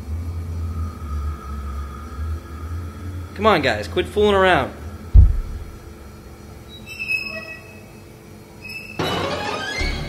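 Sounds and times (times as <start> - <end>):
heavy low thump: 5.1 - 6.0
faint high-pitched squeak: 6.7 - 9.2.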